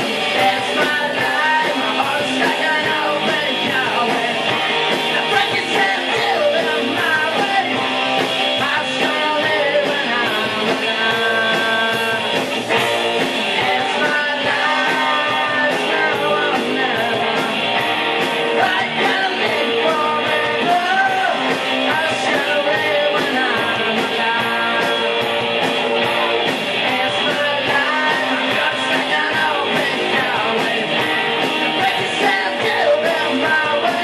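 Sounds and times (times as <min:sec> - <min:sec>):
bass guitar: 0:00.0 - 0:34.0
drums: 0:00.0 - 0:34.0
electric guitar: 0:00.0 - 0:34.0.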